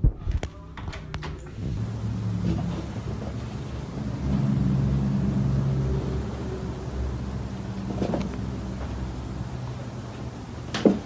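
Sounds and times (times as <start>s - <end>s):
low mechanical hum: 0.4s - 11.0s.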